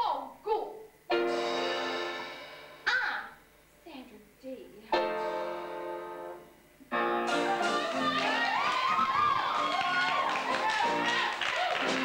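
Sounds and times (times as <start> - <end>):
piano chords: 1.1 - 2.9, 4.9 - 9.6.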